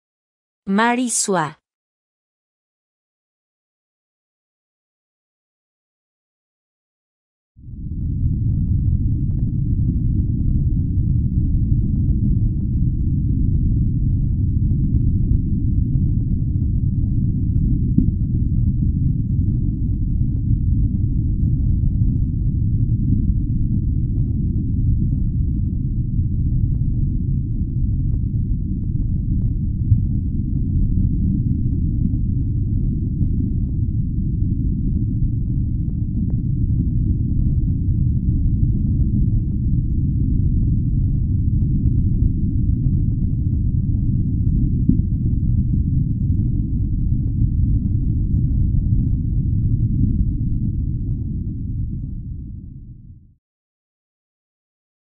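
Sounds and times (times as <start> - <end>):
dense low rumble: 7.8 - 52.4.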